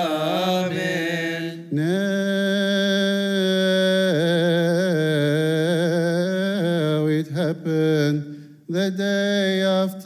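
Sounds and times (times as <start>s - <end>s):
man singing liturgical chant: 0.0s - 10.0s.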